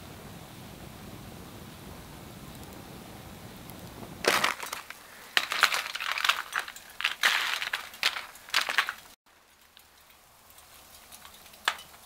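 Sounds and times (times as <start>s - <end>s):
aluminium foil crinkling: 4.2s - 12.0s.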